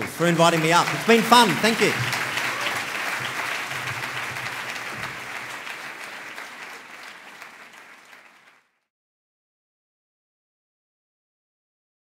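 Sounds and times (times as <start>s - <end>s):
audience applauding: 0.0s - 8.8s.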